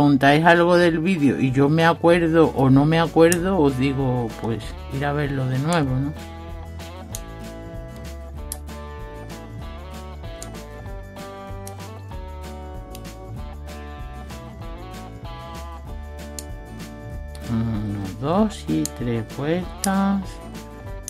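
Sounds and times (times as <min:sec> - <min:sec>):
instrumental music with plucked notes: 0:00.0 - 0:21.0.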